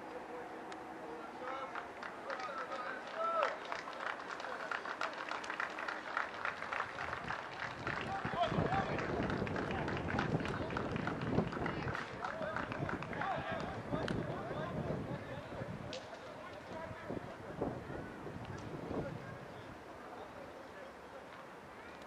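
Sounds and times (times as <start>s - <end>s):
players shouting and calling: 7.6s - 10.8s, 11.7s - 22.0s.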